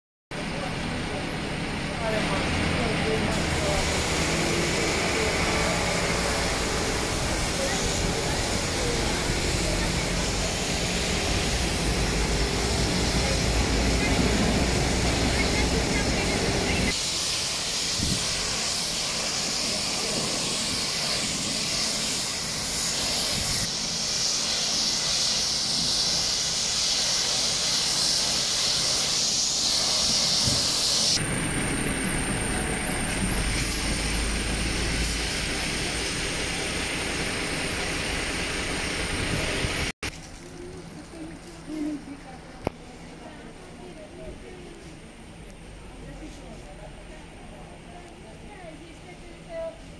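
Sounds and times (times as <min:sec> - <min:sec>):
vehicle engine running: 0:00.9 - 0:17.5
water jets hissing onto pavement: 0:02.0 - 0:40.4.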